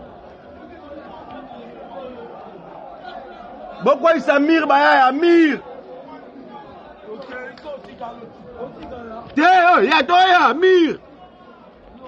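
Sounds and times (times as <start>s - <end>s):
distant voices chattering: 0.0s - 12.0s
man shouting: 3.8s - 5.6s, 9.4s - 11.0s.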